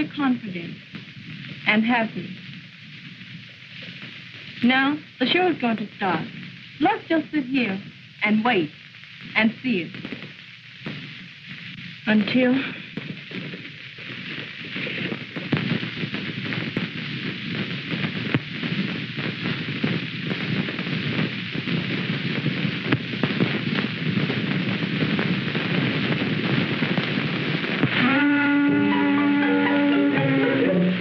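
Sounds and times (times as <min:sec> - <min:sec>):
crackling hiss with pops: 0:00.0 - 0:31.0.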